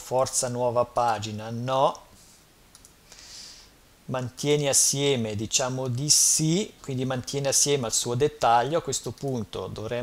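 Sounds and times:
computer mouse clicks: 0:02.7 - 0:03.0, 0:09.1 - 0:09.4.

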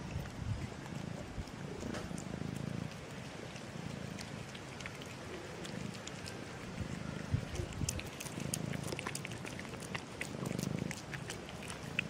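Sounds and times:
cat purring: 0:00.0 - 0:12.0
cats chewing food: 0:00.0 - 0:12.0.

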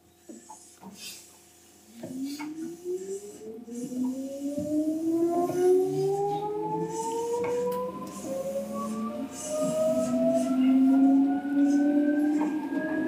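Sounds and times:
train motor whine: 0:02.0 - 0:13.0
train wheels rumbling: 0:04.9 - 0:13.0.

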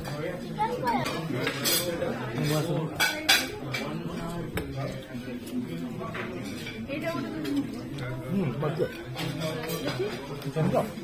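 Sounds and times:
murmur of voices: 0:00.0 - 0:11.0.

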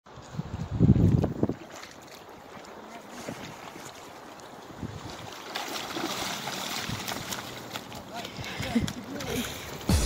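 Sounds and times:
wind buffeting microphone: 0:00.1 - 0:01.7.

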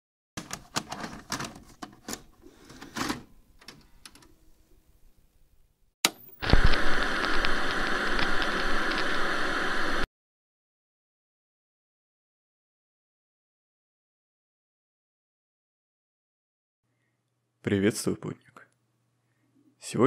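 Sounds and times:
video static hiss with crackles: 0:06.2 - 0:10.1.

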